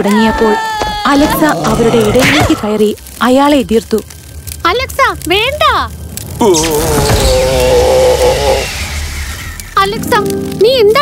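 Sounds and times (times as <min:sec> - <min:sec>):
low rumble: 0:02.9 - 0:10.0
hissing magic sound effect: 0:06.3 - 0:10.6
cartoon ogre screaming: 0:06.4 - 0:09.1.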